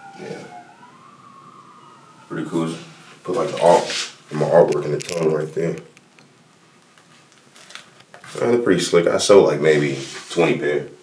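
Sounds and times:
faint emergency siren wailing: 0.0s - 5.2s.

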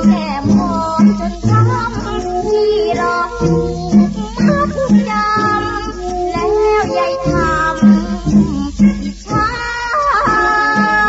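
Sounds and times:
band accompaniment: 0.0s - 11.0s
woman singing: 0.0s - 11.0s.

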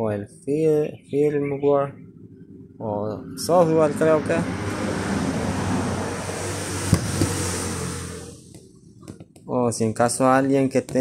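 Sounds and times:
motor vehicle rushing: 2.2s - 9.2s.

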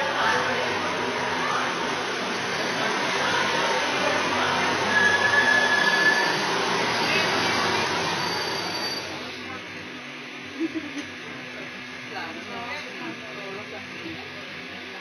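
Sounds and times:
high squeal of train: 0.0s - 9.5s
train rumbling into station: 0.0s - 15.0s.

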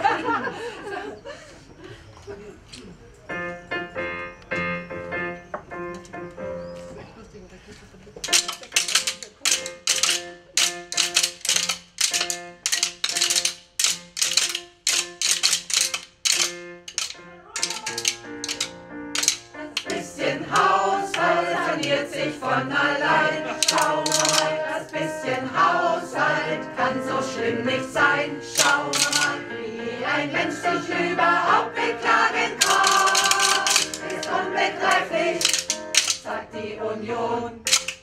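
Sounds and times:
wooden spoons clicking: 8.2s - 22.4s, 23.1s - 25.3s, 28.5s - 29.5s, 32.6s - 36.3s, 37.6s - 38.0s
choir singing: 19.2s - 37.7s.

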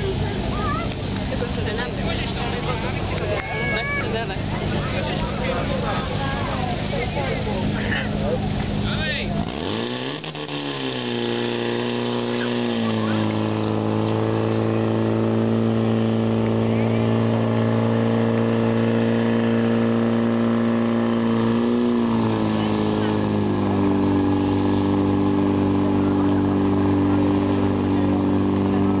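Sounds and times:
pump engine running at high speed: 0.0s - 29.0s
voices shouting: 2.2s - 8.6s.

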